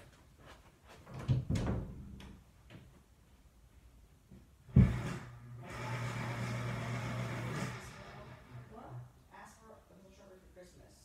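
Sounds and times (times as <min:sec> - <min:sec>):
appliance electrical hum: 0:00.0 - 0:09.9.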